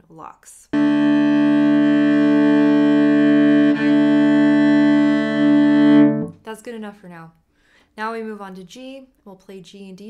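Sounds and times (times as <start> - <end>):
cello double stop bowed: 0.8 - 6.4.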